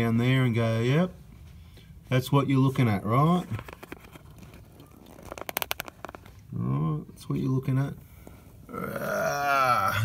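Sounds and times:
camera handling rustling: 3.5s - 6.4s.

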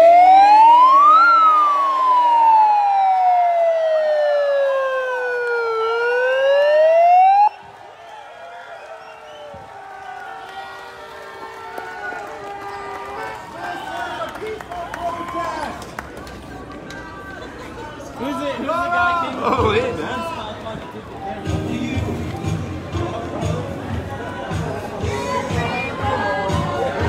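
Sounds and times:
siren wailing: 0.0s - 7.7s
crowd hubbub: 0.0s - 27.0s.

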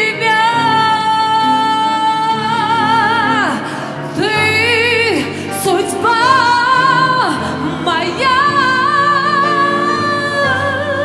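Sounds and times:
piano accompaniment: 0.0s - 11.0s
woman singing: 0.0s - 11.0s.

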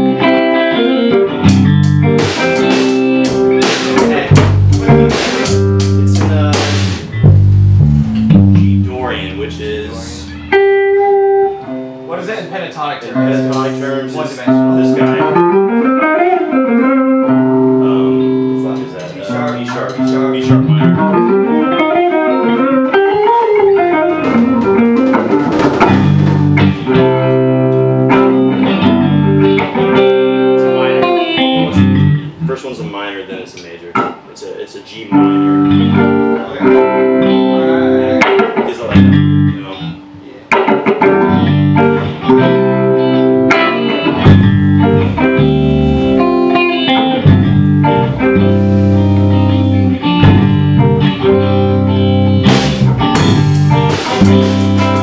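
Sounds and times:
drum kit playing: 0.0s - 16.4s, 17.4s - 32.4s, 35.2s - 39.8s, 40.5s - 55.0s
electric guitar lead lines: 0.0s - 34.3s, 35.0s - 55.0s.

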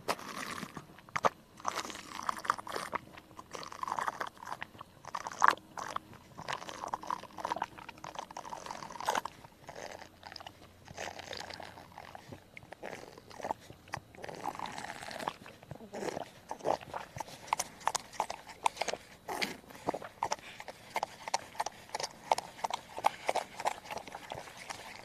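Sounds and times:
goat slurping from a cup: 0.0s - 25.0s.

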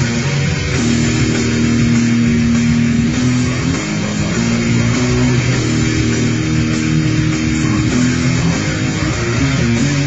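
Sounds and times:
distorted electric guitar note: 0.0s - 10.0s.

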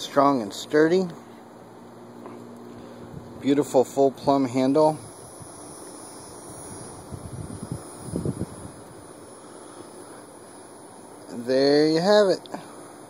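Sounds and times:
wind noise on microphone: 2.8s - 3.5s, 4.2s - 9.1s.

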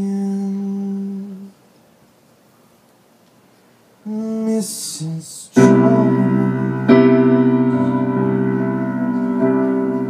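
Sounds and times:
man singing low note: 4.0s - 10.0s.

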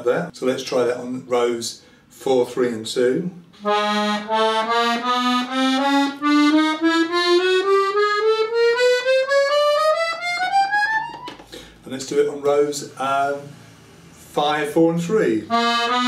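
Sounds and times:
accordion playing ascending scale: 3.6s - 11.5s, 15.5s - 16.0s.

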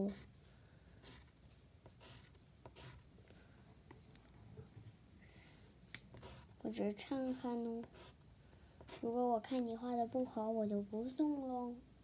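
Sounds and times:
pencil drawing on paper: 0.0s - 3.1s, 6.1s - 8.2s, 8.8s - 9.8s.

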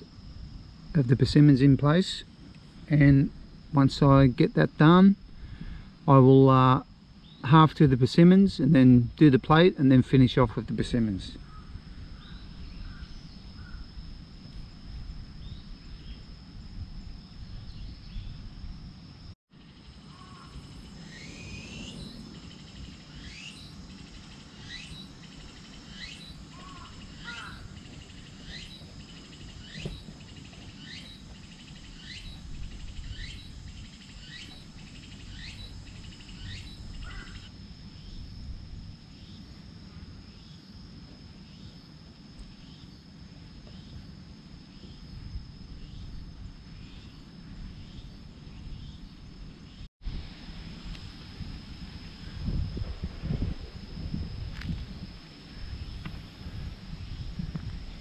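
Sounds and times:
high insect drone: 0.0s - 58.0s
bird calling: 20.0s - 37.5s.

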